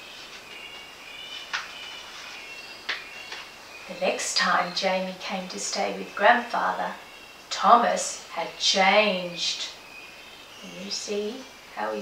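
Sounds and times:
crisp paper page noises: 0:00.0 - 0:02.6.

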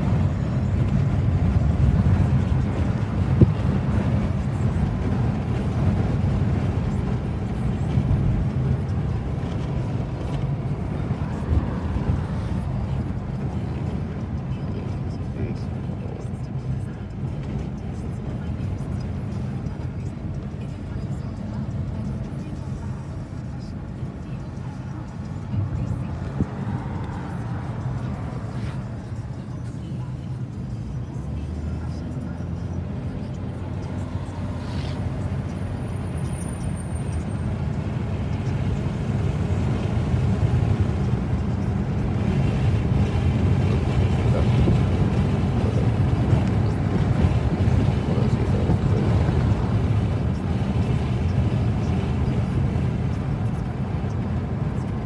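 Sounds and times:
car road and engine rumble: 0:00.0 - 0:55.0
muffled speech: 0:06.6 - 0:37.2, 0:43.4 - 0:55.0.

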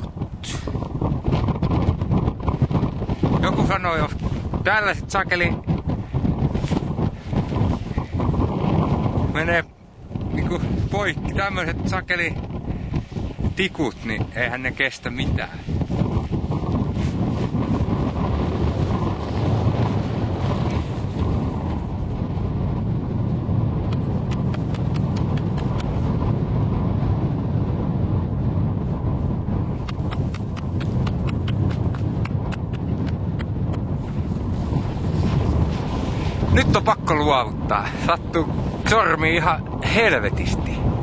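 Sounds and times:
wind rumbling on microphone: 0:00.0 - 0:41.0.

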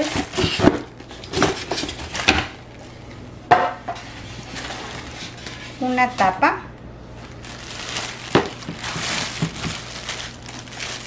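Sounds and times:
plastic wrapping rustling: 0:03.9 - 0:06.4, 0:07.0 - 0:11.0
cardboard box knocks and clatters: 0:08.3 - 0:09.8.

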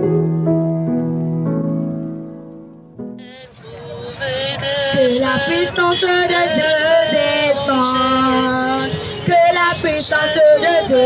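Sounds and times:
girl singing into a microphone: 0:04.9 - 0:11.0.

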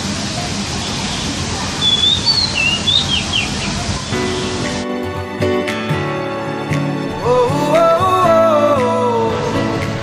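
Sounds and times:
bird whistling calls: 0:00.8 - 0:04.6.

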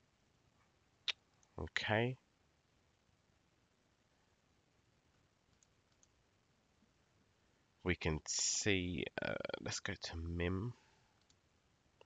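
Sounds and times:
computer mouse clicks: 0:05.5 - 0:06.2, 0:11.2 - 0:11.4.

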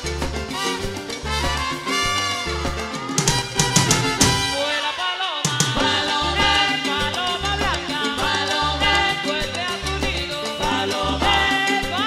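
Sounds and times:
repeating bass figure: 0:00.0 - 0:04.6, 0:05.8 - 0:12.0
steady percussion: 0:00.0 - 0:12.0
trumpet lines: 0:00.5 - 0:07.2.

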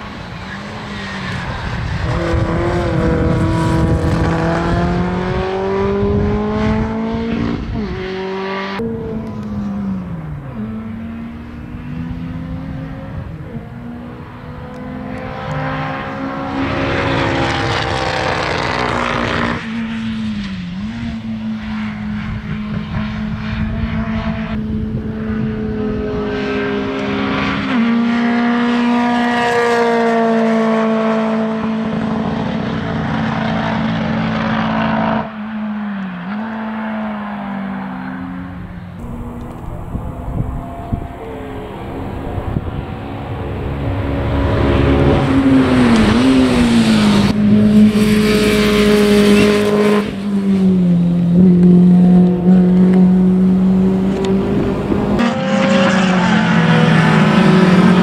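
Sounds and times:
racing car engine passing: 0:00.0 - 0:58.0.

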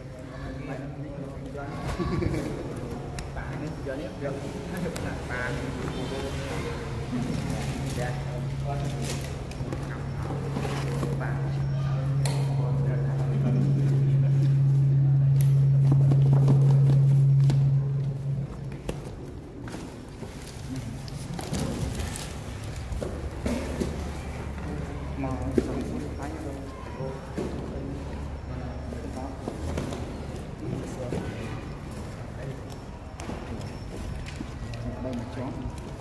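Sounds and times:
people talking: 0:00.0 - 0:18.7, 0:23.5 - 0:32.8
low hum: 0:06.9 - 0:25.3.

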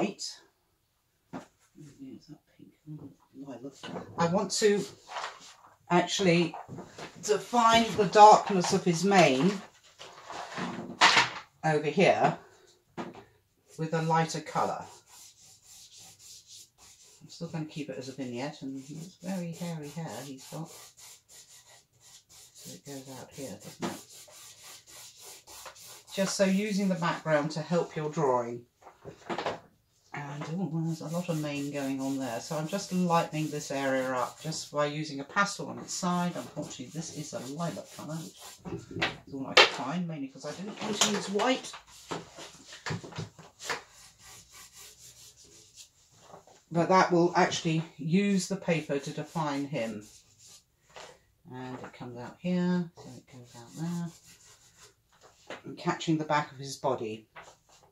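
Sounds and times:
pastel stick rubbing on paper: 0:14.6 - 0:17.4, 0:18.5 - 0:27.2, 0:30.7 - 0:34.8, 0:35.5 - 0:38.7, 0:40.9 - 0:42.7, 0:43.5 - 0:46.1, 0:48.7 - 0:50.7, 0:53.0 - 0:55.0.

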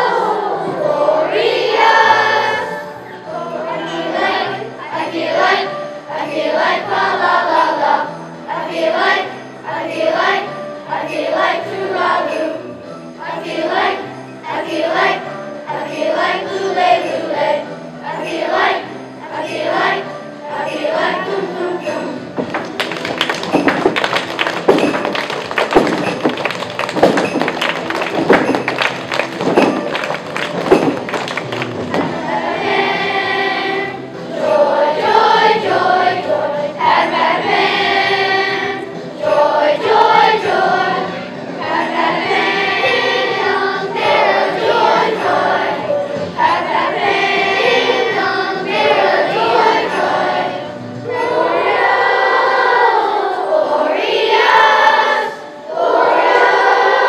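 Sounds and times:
accompanying music: 0:00.0 - 0:57.0
children's choir singing: 0:00.0 - 0:57.0
sharp percussive hits: 0:21.8 - 0:32.3.

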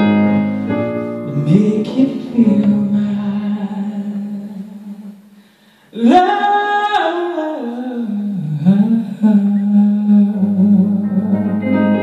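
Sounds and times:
man singing long low note: 0:06.0 - 0:12.0.

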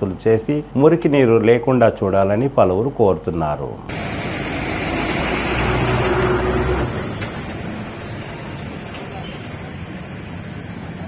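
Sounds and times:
street traffic noise: 0:03.8 - 0:11.0
motor vehicle engine passing: 0:03.9 - 0:11.0.

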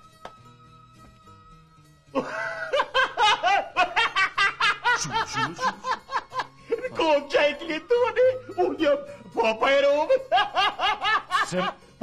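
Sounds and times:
man laughing heartily: 0:02.1 - 0:07.1, 0:10.0 - 0:11.8.

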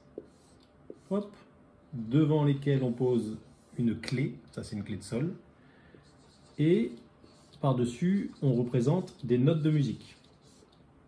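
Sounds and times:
marker drawing on whiteboard: 0:00.0 - 0:04.9, 0:05.9 - 0:10.8.

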